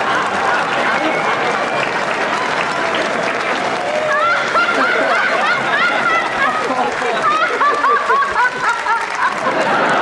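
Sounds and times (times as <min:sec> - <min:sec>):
audience applauding: 0:00.0 - 0:10.0
crowd voices: 0:00.0 - 0:10.0.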